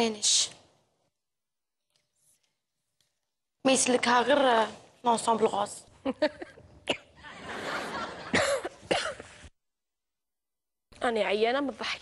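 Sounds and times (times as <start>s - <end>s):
woman coughing: 6.8s - 7.2s, 8.3s - 9.3s.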